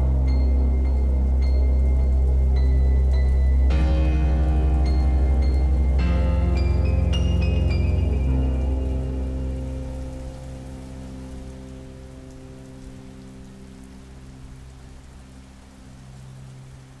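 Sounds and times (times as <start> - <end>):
low sustained music chord: 0.0 - 17.0
rain on a window pane: 0.0 - 17.0.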